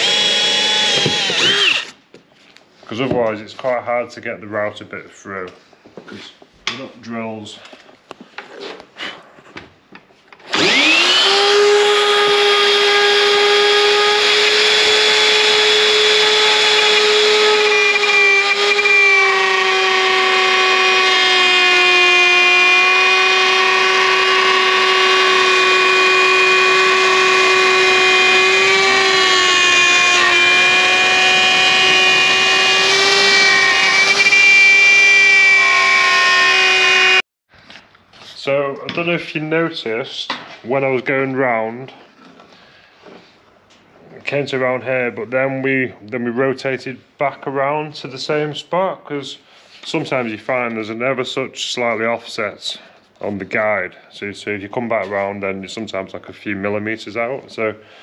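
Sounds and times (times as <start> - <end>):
plunge router high whine: 0.0 - 2.0, 10.5 - 37.2.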